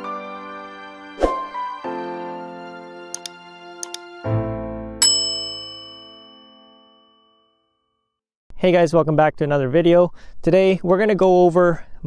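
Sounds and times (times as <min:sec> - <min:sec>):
bright metallic ding: 0:03.2 - 0:04.0, 0:05.0 - 0:07.3.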